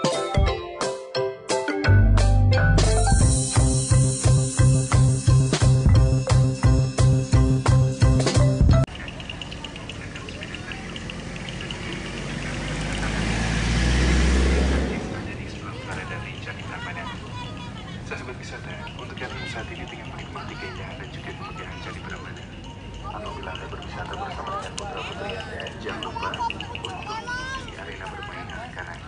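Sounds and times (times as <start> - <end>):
music beat: 0.0 - 12.3
deep bass: 1.9 - 8.9
vehicle driving past: 8.9 - 19.2.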